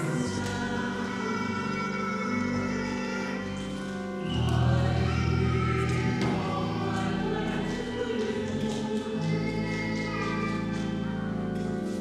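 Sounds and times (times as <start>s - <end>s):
choir singing a hymn: 0.0s - 12.0s.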